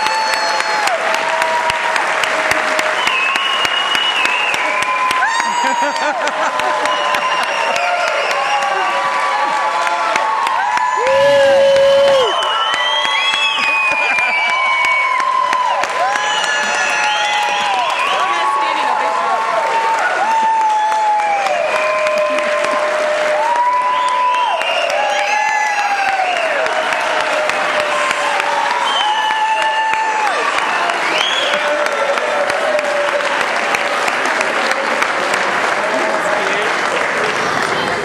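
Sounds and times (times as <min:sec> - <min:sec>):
cheering shouts and whoops: 0:00.0 - 0:34.8
audience applauding: 0:00.0 - 0:38.0.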